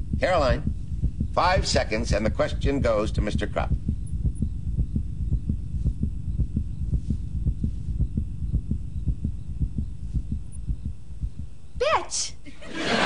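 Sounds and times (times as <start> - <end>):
countdown low thumps: 0.0 - 12.0.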